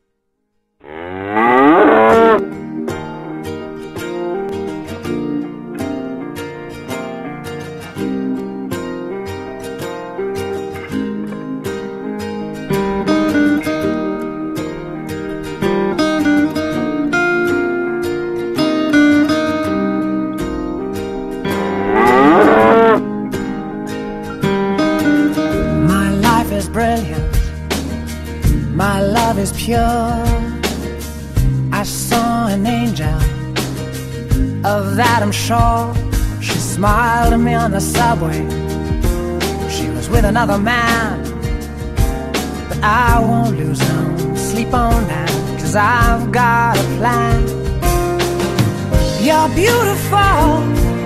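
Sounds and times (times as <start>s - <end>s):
animal lowing: 0.8s - 2.5s, 21.5s - 23.0s
soft music with plucked notes: 1.3s - 51.0s.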